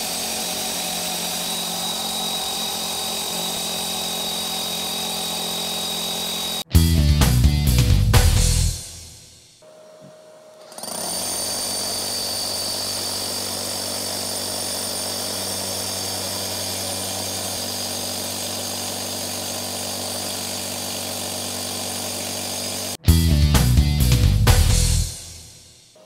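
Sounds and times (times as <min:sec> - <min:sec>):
rotary hammer drilling into concrete: 0:00.0 - 0:06.7, 0:10.7 - 0:23.0.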